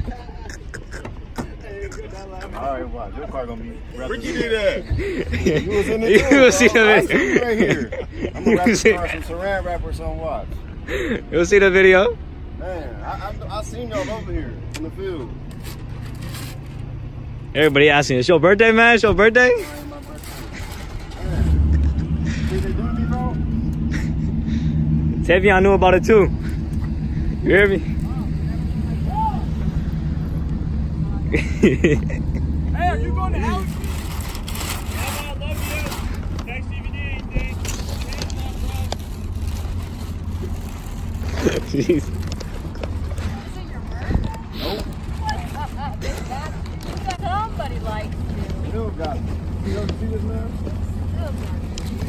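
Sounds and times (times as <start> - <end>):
vehicle engine idling: 0.0 - 52.0.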